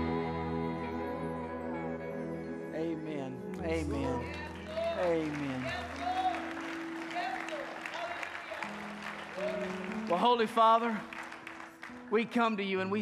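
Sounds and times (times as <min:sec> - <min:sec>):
keyboard sustained chords: 0:00.0 - 0:13.0
person speaking over music: 0:02.7 - 0:06.5
congregation applauding: 0:03.9 - 0:13.0.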